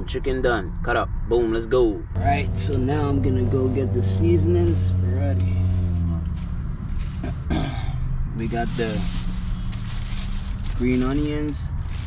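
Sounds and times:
man clearing his throat: 7.2s - 8.0s.

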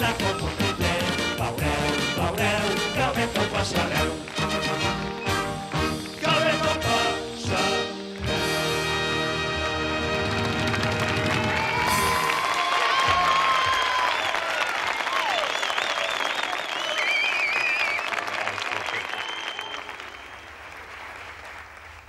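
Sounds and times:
audience applause: 9.8s - 22.0s
whistles: 13.7s - 20.8s.

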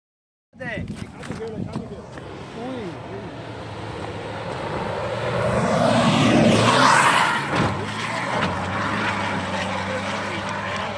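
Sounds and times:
rally car engine at full throttle: 2.0s - 10.9s.

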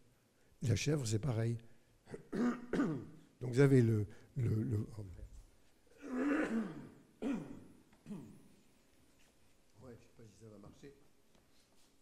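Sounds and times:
man coughing: 2.1s - 3.2s, 6.0s - 8.5s.

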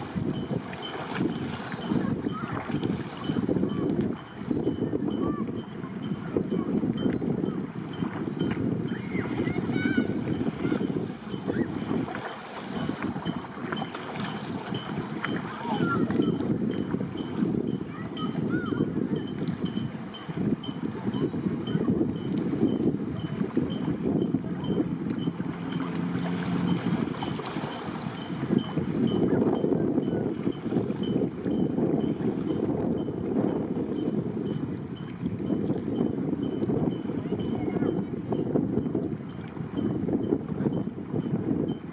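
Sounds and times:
wind buffeting microphone: 0.0s - 41.9s.

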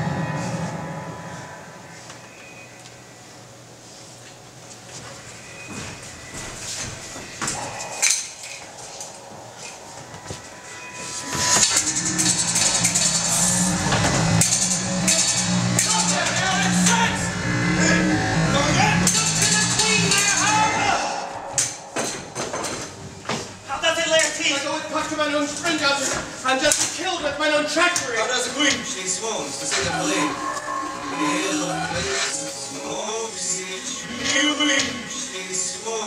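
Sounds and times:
music: 0.0s - 36.0s
voices: 5.7s - 36.0s.

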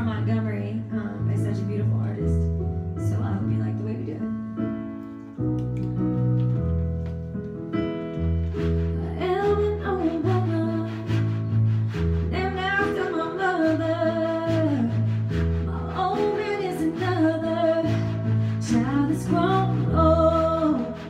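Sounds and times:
electric keyboard chords: 2.5s - 10.7s
woman singing: 8.9s - 11.4s, 12.3s - 21.0s.

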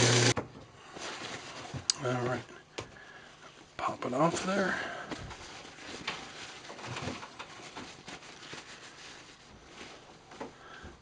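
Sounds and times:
cloth rubbing and rustling: 0.8s - 2.3s, 4.2s - 10.4s.

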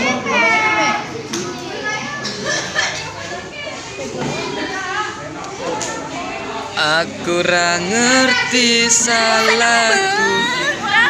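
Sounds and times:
young people chattering: 0.0s - 11.0s.

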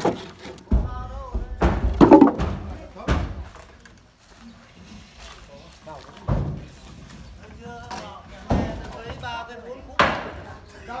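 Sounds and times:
sharp wooden knock: 1.6s - 3.3s.

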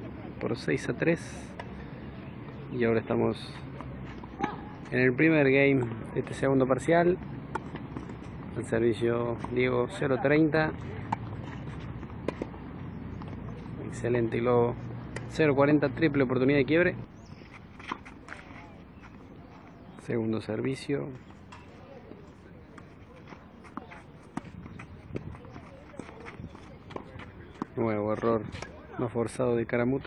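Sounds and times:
ball bouncing: 7.1s - 8.7s
footsteps on clay: 21.2s - 28.8s.

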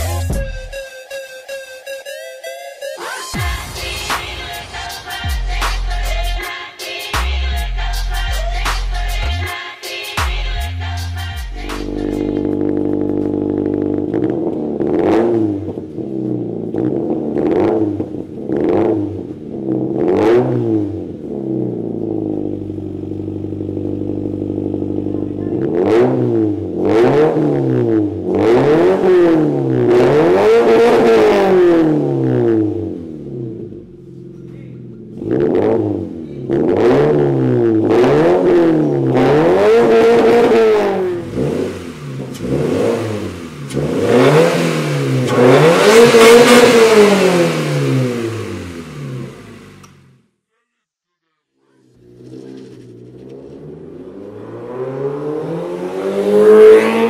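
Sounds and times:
car engine revving: 11.6s - 50.2s, 51.7s - 57.0s.

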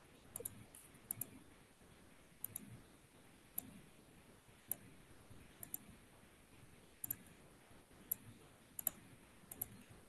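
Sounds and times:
faint computer clicks: 0.3s - 1.4s, 2.4s - 2.8s, 4.7s - 4.9s, 5.6s - 6.0s, 7.0s - 7.4s, 8.1s - 9.9s.

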